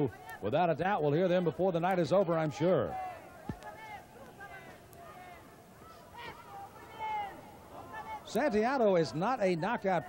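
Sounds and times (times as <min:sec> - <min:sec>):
crowd shouting: 0:00.0 - 0:00.6, 0:01.2 - 0:10.0.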